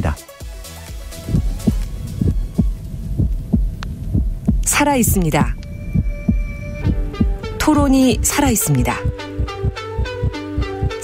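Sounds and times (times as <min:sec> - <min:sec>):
faint electronic drone: 0:01.1 - 0:11.0
heartbeat thumps: 0:01.2 - 0:11.0.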